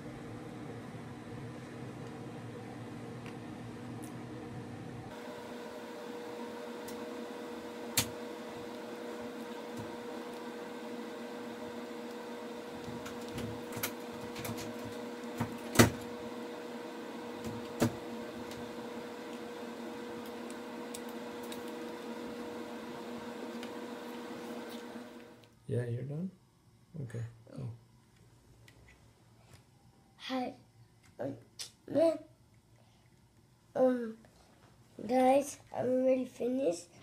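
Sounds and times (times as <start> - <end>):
background hum: 25.4 - 37.0.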